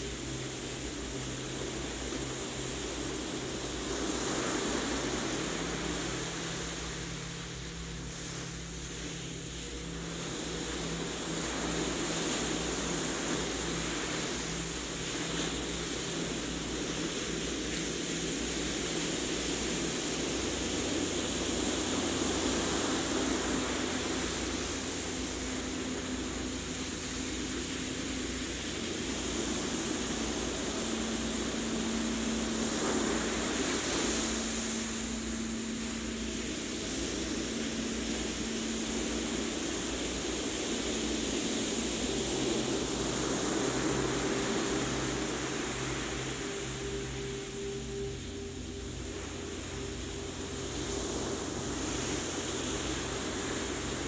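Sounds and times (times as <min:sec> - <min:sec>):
ambient meditation music: 0:00.0 - 0:54.0.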